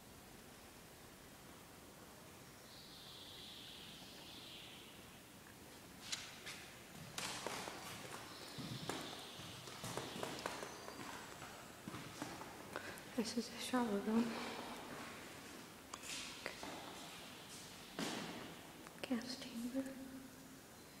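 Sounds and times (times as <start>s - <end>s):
footsteps on hard floor: 6.0s - 12.6s.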